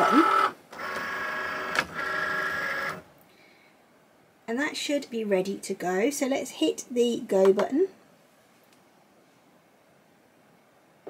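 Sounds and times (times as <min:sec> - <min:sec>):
cutting machine motors whining: 0:00.0 - 0:03.0.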